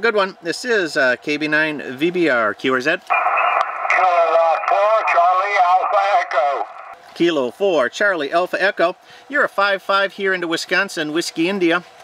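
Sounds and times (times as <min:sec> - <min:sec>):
steady radio hiss: 0:03.1 - 0:07.0
tinny radio speech: 0:03.1 - 0:07.0.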